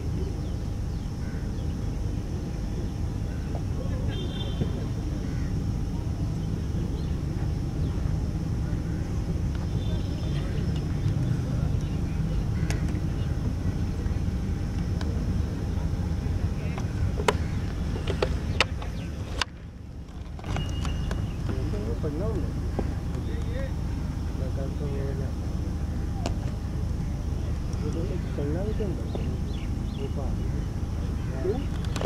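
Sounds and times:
steady low rumble: 0.0s - 32.0s.

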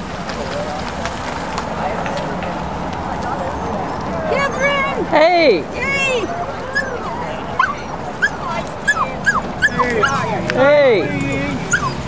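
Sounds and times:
dog yipping: 6.0s - 10.4s, 11.6s - 12.0s.

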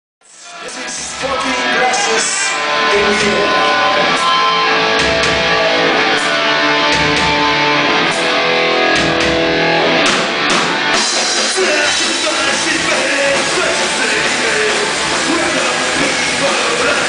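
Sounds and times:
punk rock band playing: 0.3s - 17.0s.

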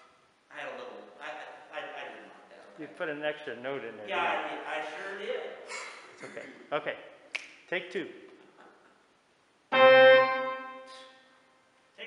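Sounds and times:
piano note ringing: 9.7s - 11.2s.

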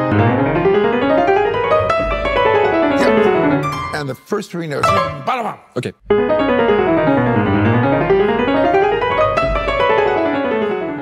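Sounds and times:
solo piano classical passage: 0.0s - 3.9s, 6.1s - 11.0s.

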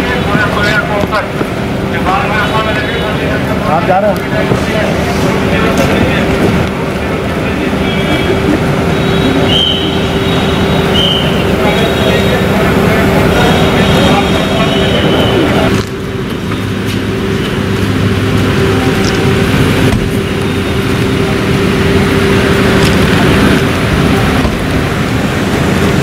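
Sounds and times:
car engines running: 0.0s - 26.0s
people talking: 0.0s - 26.0s.

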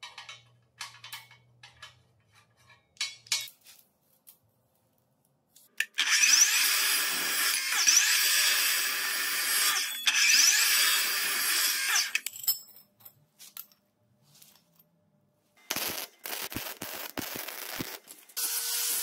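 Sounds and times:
metallic clicks of steel parts: 0.0s - 3.6s
chop saw cutting steel: 5.8s - 12.2s.

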